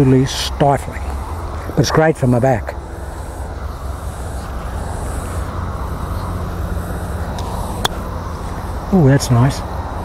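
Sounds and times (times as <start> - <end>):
low outdoor rumble: 0.0 - 10.0
golf club striking ball: 7.3 - 8.1.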